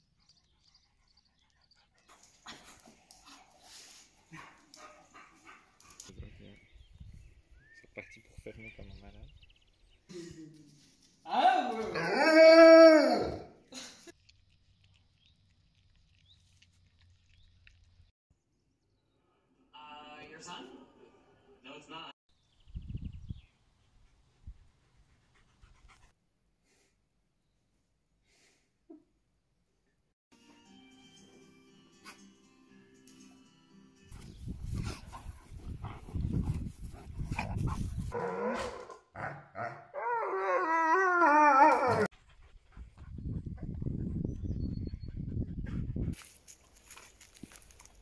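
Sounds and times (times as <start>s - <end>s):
dog yips: 39.6s - 42.1s.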